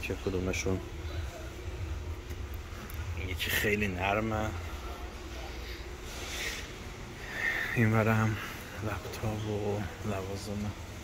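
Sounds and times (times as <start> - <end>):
warehouse store background hum: 0.0 - 11.0.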